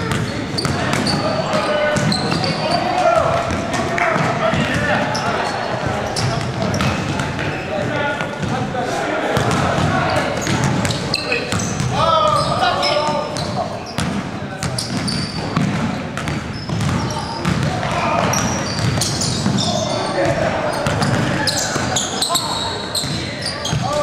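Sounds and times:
basketballs bouncing on wooden floor: 0.0s - 8.6s, 9.4s - 22.1s, 23.0s - 24.0s
players' voices and calls: 0.0s - 24.0s.

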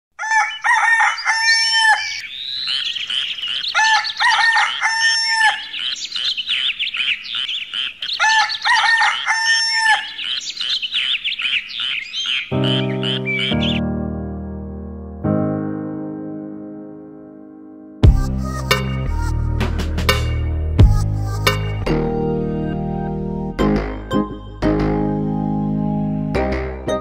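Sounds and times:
rooster crowing: 0.2s - 2.2s, 3.6s - 5.8s, 8.2s - 10.2s
high bird chirping: 0.3s - 13.9s
piano music: 12.5s - 27.0s.

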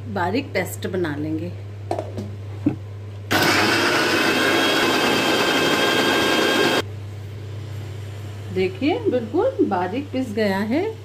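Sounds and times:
mixer grinder running: 3.3s - 6.8s.

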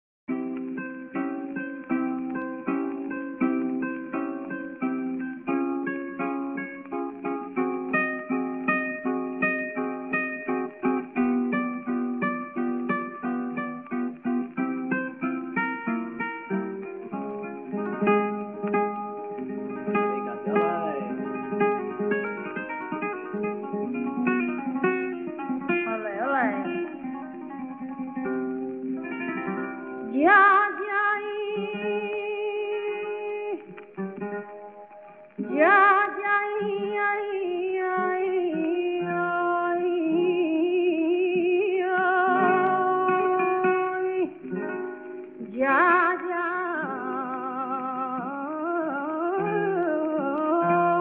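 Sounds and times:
flamenco guitar: 0.3s - 51.0s
woman singing: 17.8s - 22.1s, 25.6s - 27.8s, 29.9s - 33.8s, 35.4s - 44.8s, 45.4s - 51.0s.

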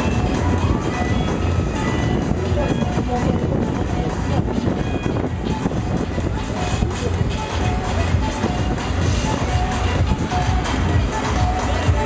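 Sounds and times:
loud music from ride speakers: 0.0s - 12.0s
steady low rumble: 0.0s - 12.0s.

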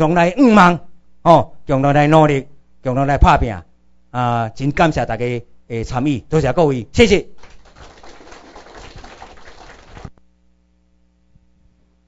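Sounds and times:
audience clapping: 7.4s - 10.1s.

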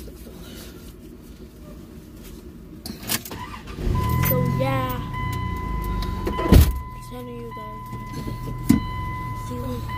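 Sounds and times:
low rumble inside car: 3.4s - 9.9s.

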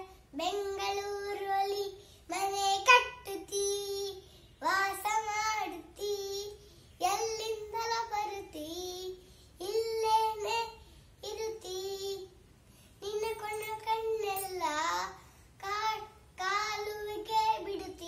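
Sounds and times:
boy singing unaccompanied: 0.0s - 12.4s, 13.0s - 18.0s.

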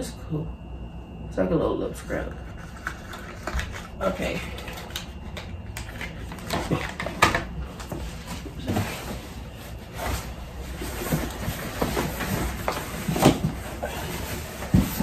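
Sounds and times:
cardboard boxes knocking and scraping: 6.5s - 15.0s.

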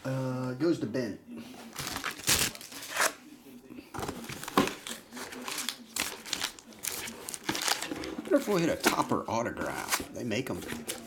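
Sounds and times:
card packs crinkling and rustling: 1.7s - 3.2s, 4.0s - 11.0s.

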